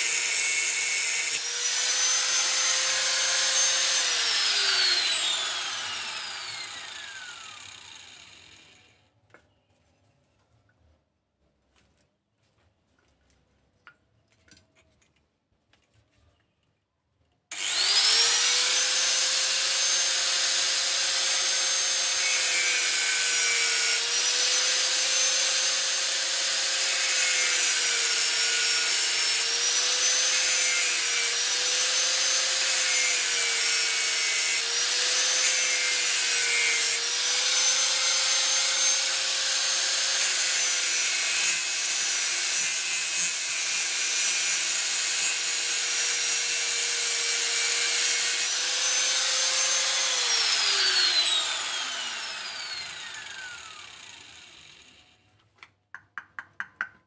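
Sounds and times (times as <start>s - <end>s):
angle grinder grinding wood: 0.0s - 8.9s, 17.5s - 55.2s.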